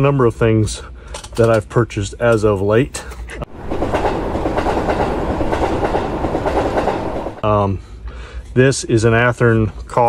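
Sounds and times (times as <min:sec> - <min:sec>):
train rolling on rails: 0:03.4 - 0:07.4.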